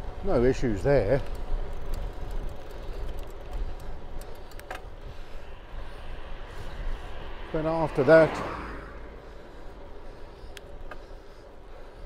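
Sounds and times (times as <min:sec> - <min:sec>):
bicycle tyres rolling on tarmac: 0:00.0 - 0:12.0
wind buffeting microphone: 0:00.0 - 0:12.0.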